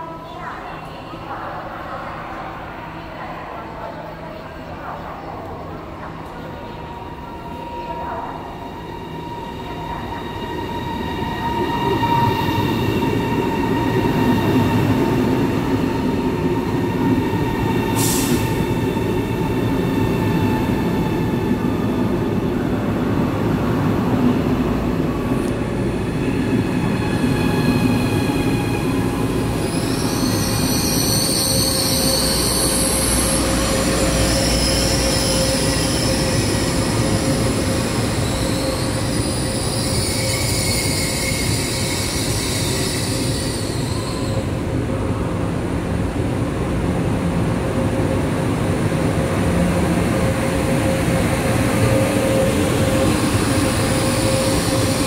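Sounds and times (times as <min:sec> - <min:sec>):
electric train pulling in: 0:05.7 - 0:55.0
train whining tones: 0:25.0 - 0:44.8, 0:49.2 - 0:55.0.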